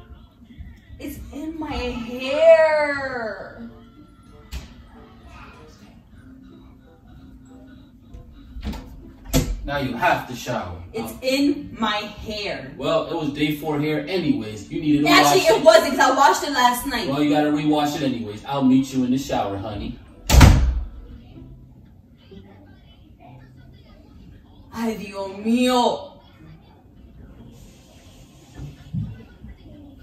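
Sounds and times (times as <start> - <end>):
faint background music: 0.0 - 30.0
voices talking: 15.0 - 17.1
door slamming shut: 20.3 - 20.9.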